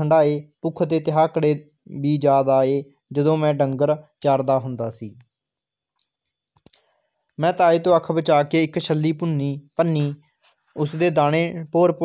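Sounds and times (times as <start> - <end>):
faint short clicks: 5.9 - 7.4.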